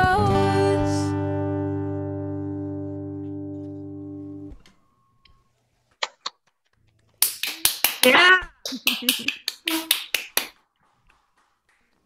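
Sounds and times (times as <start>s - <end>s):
sharp hand claps: 7.2s - 10.6s.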